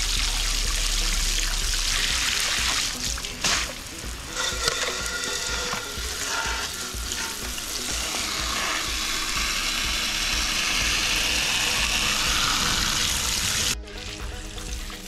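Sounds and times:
hose spraying water into a pot: 0.0 - 15.0.

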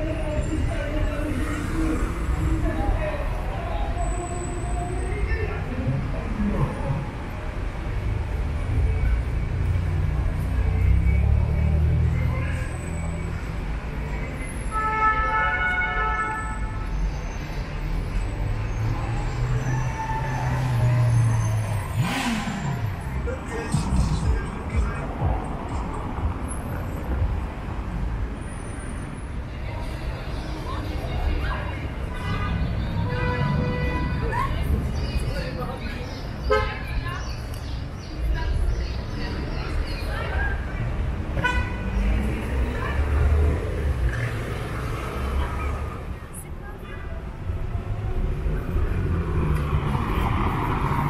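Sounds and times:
traffic engines rumbling: 0.0 - 51.0
car horn: 14.6 - 16.8, 32.0 - 34.3, 36.5 - 36.8, 41.4 - 41.9
engine revving: 21.8 - 23.2
car horn toot: 41.4 - 41.8.

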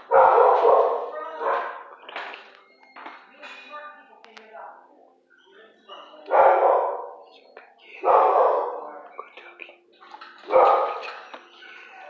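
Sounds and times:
dog barking: 0.0 - 1.9, 6.0 - 7.3, 8.0 - 9.0, 10.5 - 11.2.

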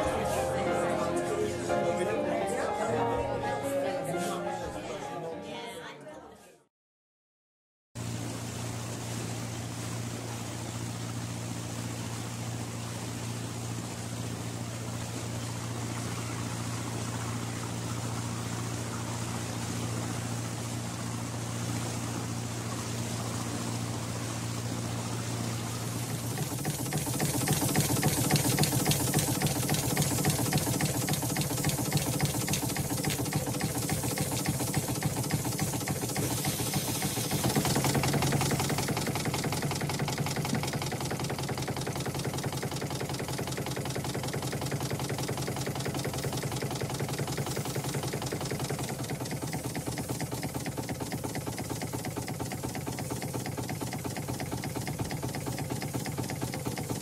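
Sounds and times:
motor running with mechanical clatter: 8.0 - 57.0.

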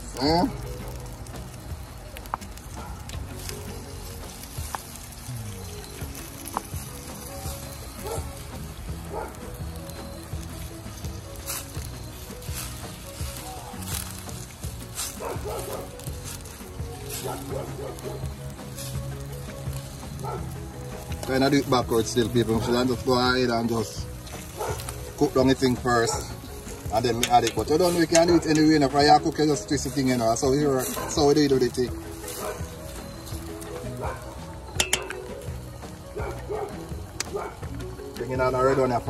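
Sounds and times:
background music: 0.0 - 39.0
food sizzling in a skillet: 0.0 - 39.0
metal fork clicking against pan: 34.8 - 35.2.

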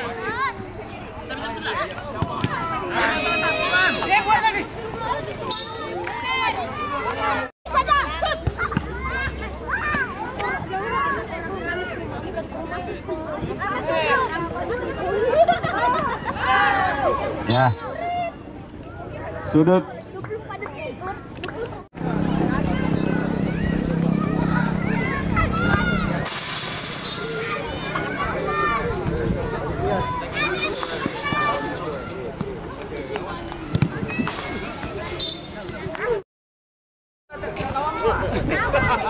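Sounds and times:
voices calling and chattering: 0.0 - 36.2, 37.3 - 39.0.

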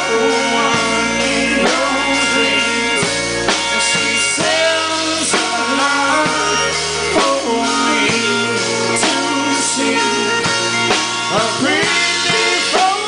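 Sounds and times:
drum kit: 0.0 - 13.0
steel guitar gliding notes: 0.0 - 13.0
strummed electric guitars: 0.0 - 13.0.

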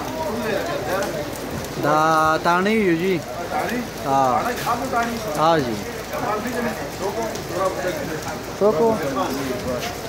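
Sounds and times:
steady rainfall: 0.0 - 10.0.

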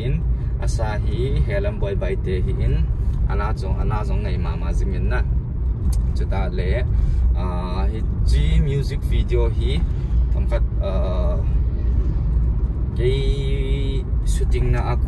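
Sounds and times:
man talking: 0.0 - 5.3, 6.0 - 11.6, 13.0 - 15.0
car engine and road rumble: 0.0 - 15.0.

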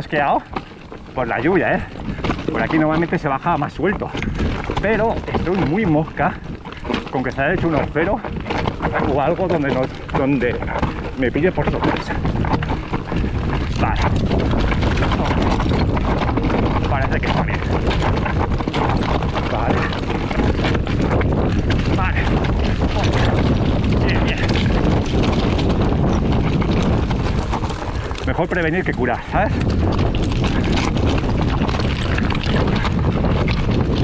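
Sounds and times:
bike rattling and clicking: 0.0 - 34.0
tyres crunching over stones: 0.0 - 34.0
wind noise on microphone: 0.0 - 34.0.

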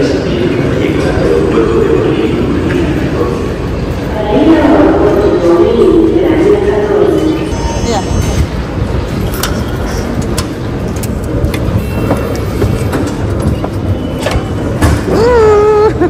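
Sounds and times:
low rumble of underground station: 0.0 - 16.0
turnstile clicking and clacking: 9.2 - 15.2.

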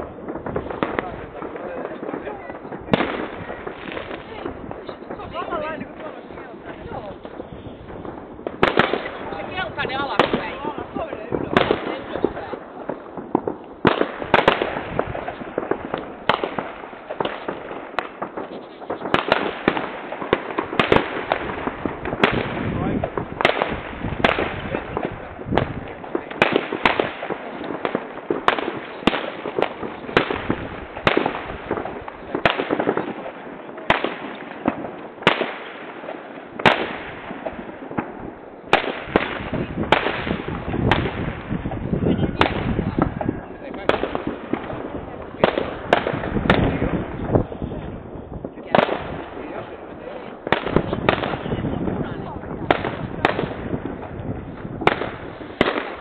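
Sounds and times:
firework bangs and crackles: 0.0 - 56.0.

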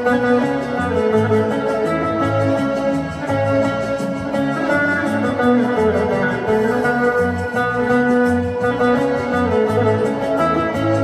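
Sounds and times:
low bass notes: 0.0 - 11.0
plucked long-necked lute melody: 0.0 - 11.0
steady beat: 0.0 - 11.0.

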